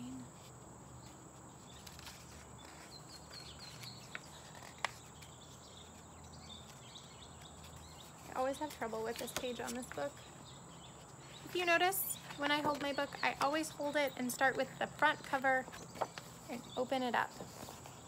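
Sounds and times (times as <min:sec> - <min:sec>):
bird chirping: 0:00.0 - 0:18.0.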